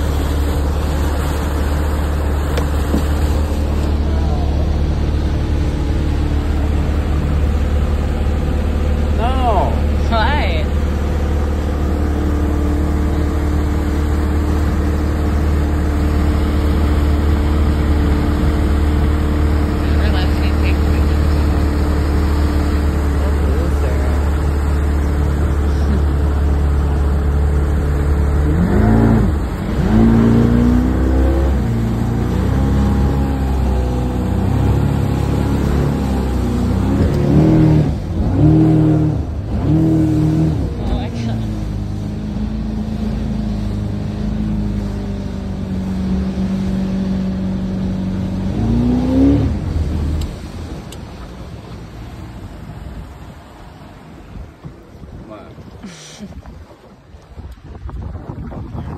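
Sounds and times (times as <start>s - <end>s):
outboard motor running: 0.0s - 58.9s.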